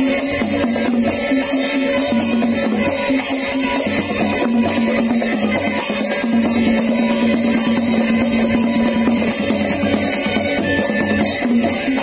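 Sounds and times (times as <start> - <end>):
hand drums in fast rhythm: 0.0 - 12.0
held pitched tone: 1.0 - 12.0.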